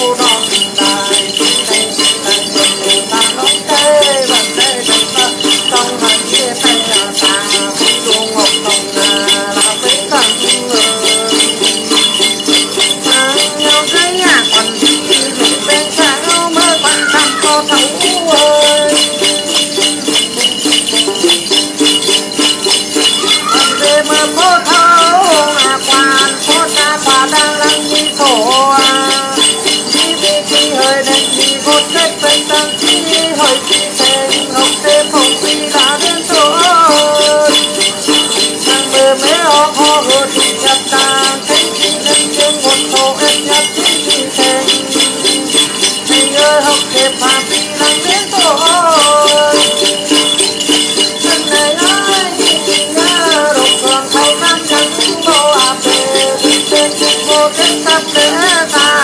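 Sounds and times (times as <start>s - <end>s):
plucked lute: 0.0s - 59.0s
small bells shaken: 0.0s - 59.0s
man chanting: 13.1s - 19.4s, 23.2s - 29.5s.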